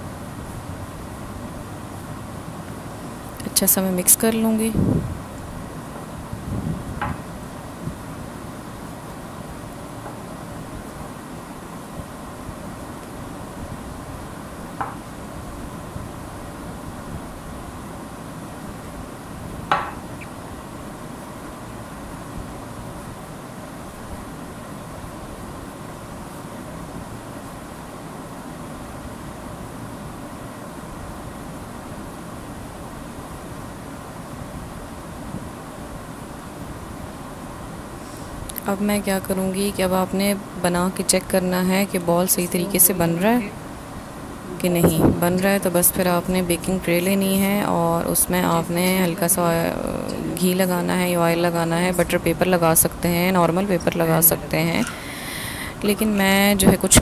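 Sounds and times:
steady background hiss: 0.0 - 57.0.

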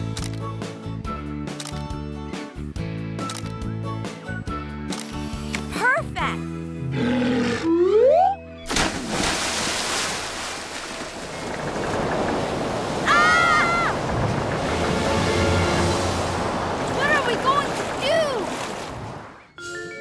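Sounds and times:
music with rising slide: 7.6 - 8.8
rush of water: 8.7 - 19.4.

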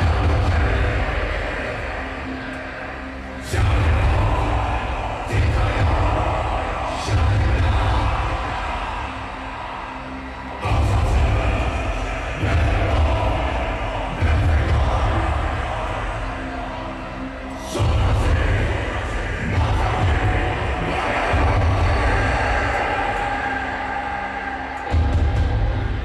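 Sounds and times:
crowd cheering: 0.0 - 26.0.

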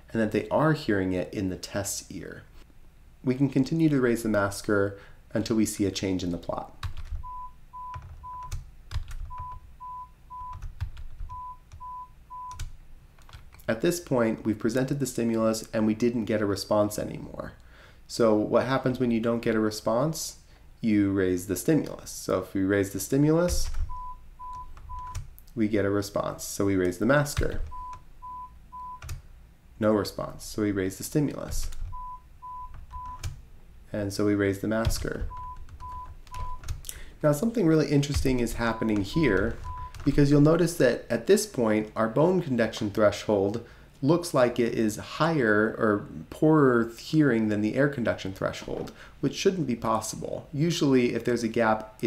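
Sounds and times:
short pure-tone beeps: 7.2 - 8.5, 9.4 - 10.6, 11.3 - 12.5, 27.7 - 29.0, 31.9 - 33.2, 38.7 - 40.0.

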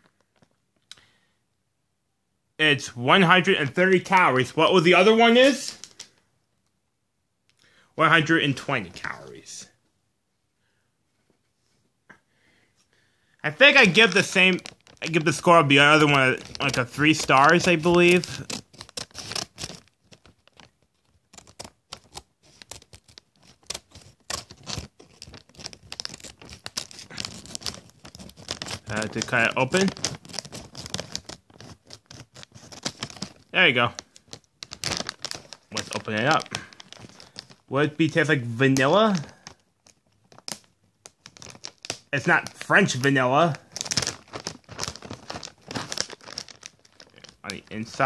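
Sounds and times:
plastic snack bag crinkling: 3.2 - 6.2, 8.1 - 9.7, 13.5 - 48.0.

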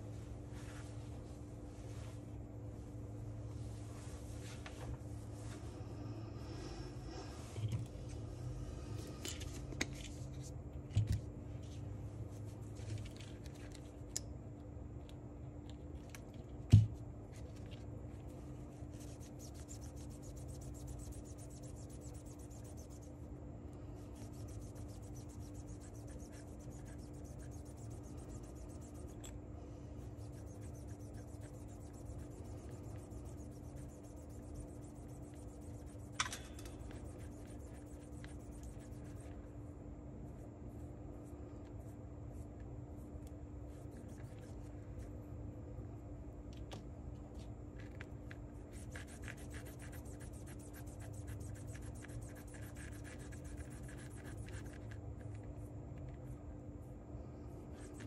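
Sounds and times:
steady low hum: 0.0 - 58.0
cloth rubbing on metal shaft: 18.9 - 23.2, 24.0 - 29.3, 30.0 - 39.3.

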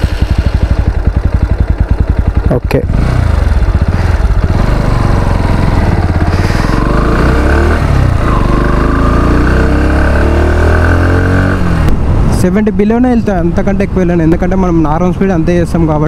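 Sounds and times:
motorcycle engine accelerating: 0.0 - 16.0.

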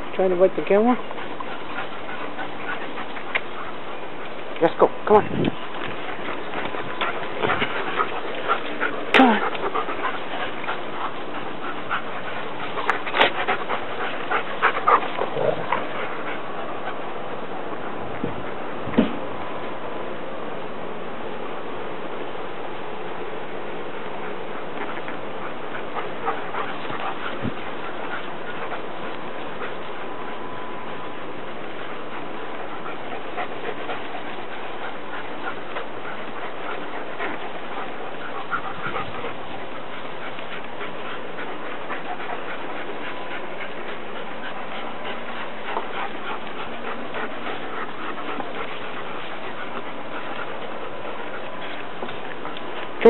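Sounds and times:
puppy panting and snuffling: 0.0 - 20.2, 23.5 - 53.0
small rustles and clicks: 30.9 - 53.0.

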